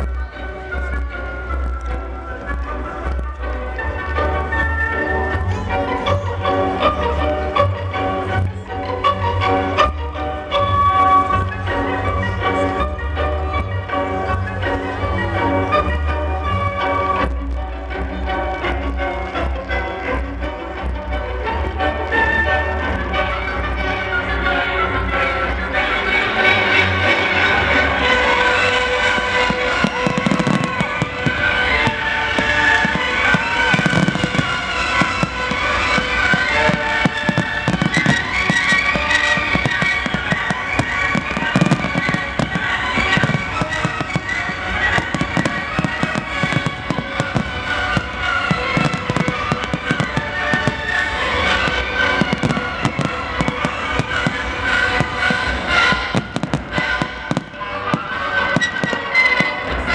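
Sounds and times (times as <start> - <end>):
fireworks bangs and crackles: 0.0 - 59.9
music playing: 0.0 - 59.9.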